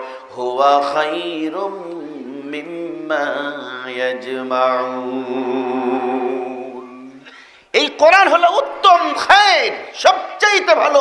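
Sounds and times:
man chanting melodic recitation: 0.0 - 7.2, 7.8 - 11.0.

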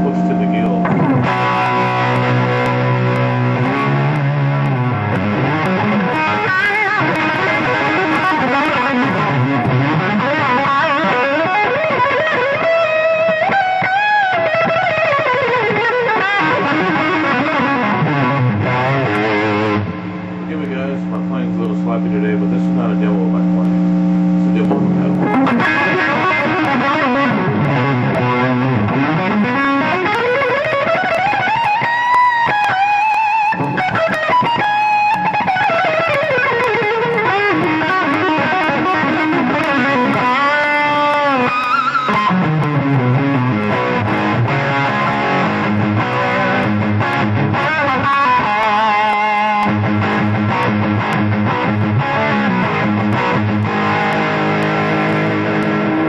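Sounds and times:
overdriven electric guitar: 0.0 - 56.0.

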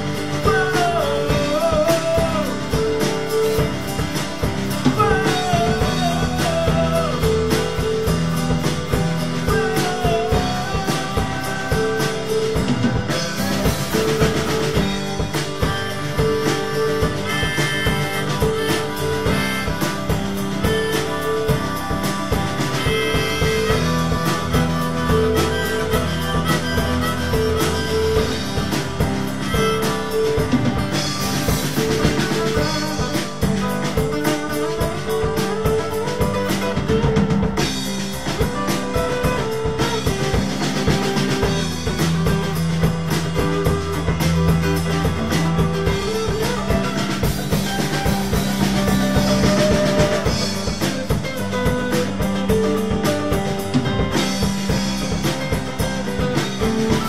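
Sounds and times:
acoustic guitar: 0.0 - 57.0
drum kit beat: 0.0 - 57.0
keyboard: 0.0 - 57.0
lead melody bending in pitch: 0.0 - 57.0.

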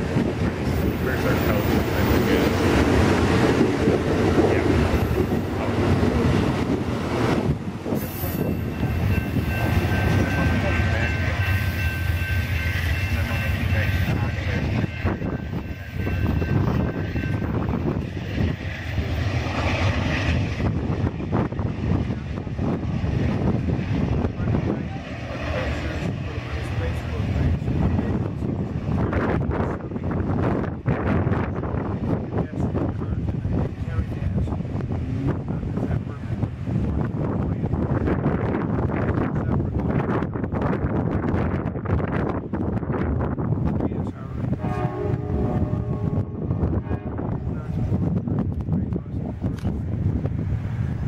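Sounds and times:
train wheels rumbling on rail: 0.0 - 51.0.

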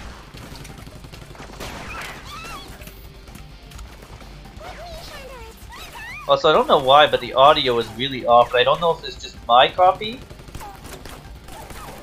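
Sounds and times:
cartoon rapid gunfire: 0.0 - 2.9, 10.1 - 12.0
background music: 0.0 - 12.0.

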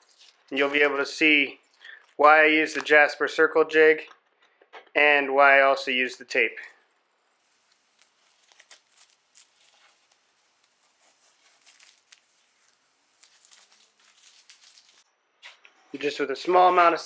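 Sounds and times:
masking tape being peeled: 0.0 - 0.8, 6.8 - 15.7.

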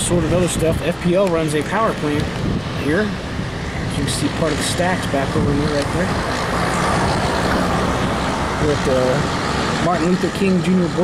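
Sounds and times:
diesel truck engine running: 0.0 - 11.0
road traffic noise: 0.0 - 11.0.

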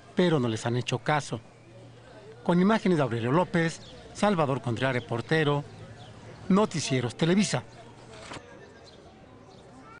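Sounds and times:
street market ambience: 0.0 - 10.0.

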